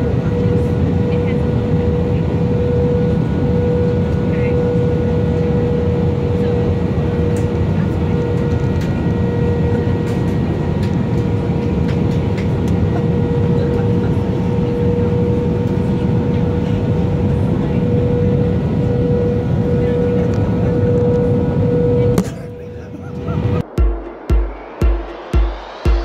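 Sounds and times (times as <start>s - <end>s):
airliner engines rumbling: 0.0s - 26.0s
steady whine: 0.0s - 26.0s.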